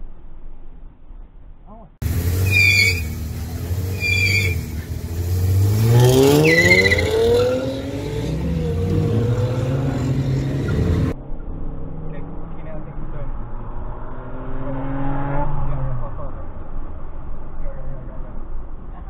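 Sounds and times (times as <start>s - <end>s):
car engine revving: 2.0s - 17.6s
short high squeals: 2.4s - 3.3s, 3.9s - 4.9s, 6.3s - 7.8s.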